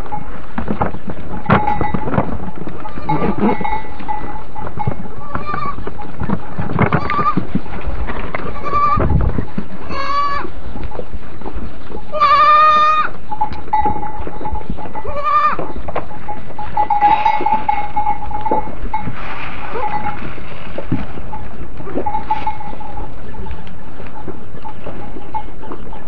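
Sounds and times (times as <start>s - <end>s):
goat kid bleating: 2.8s - 3.9s, 5.2s - 5.9s, 6.9s - 7.5s, 8.4s - 9.2s, 9.8s - 10.5s, 12.1s - 13.2s, 15.0s - 15.7s.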